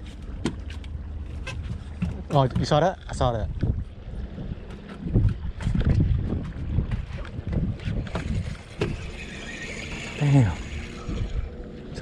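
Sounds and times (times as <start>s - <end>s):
wind buffeting microphone: 1.5s - 12.0s.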